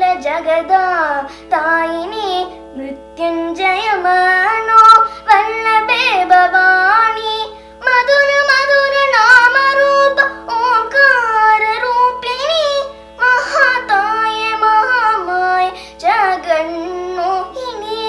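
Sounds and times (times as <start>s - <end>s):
girl singing devotional song: 0.0s - 18.0s
shruti box drone: 0.0s - 18.0s.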